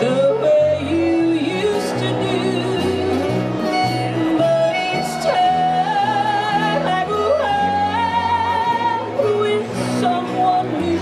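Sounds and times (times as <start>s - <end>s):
acoustic guitars: 0.0s - 11.0s
fiddle: 0.0s - 11.0s
woman yodeling: 0.0s - 11.0s.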